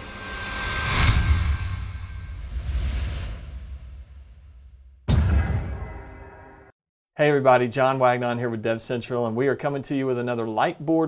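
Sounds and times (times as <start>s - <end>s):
swoosh: 0.0s - 6.7s
deep hit: 1.0s - 6.7s.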